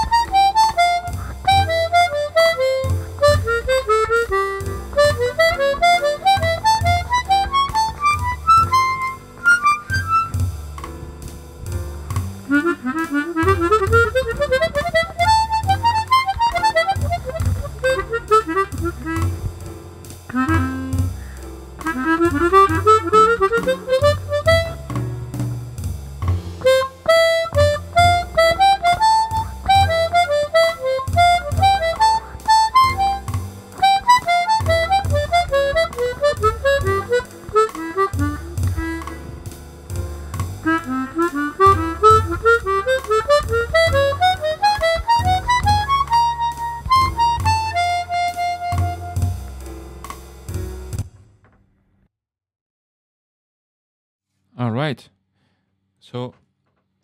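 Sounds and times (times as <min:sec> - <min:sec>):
chromatic harmonica improvising: 0:00.0 - 0:10.5, 0:12.4 - 0:19.7, 0:20.3 - 0:25.2, 0:26.6 - 0:49.6.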